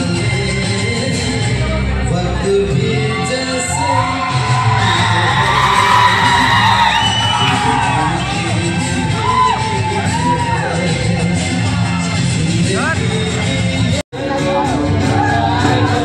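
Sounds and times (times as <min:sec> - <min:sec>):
pop music with steady beat: 0:00.0 - 0:16.0
crowd cheering and whooping: 0:03.6 - 0:11.0.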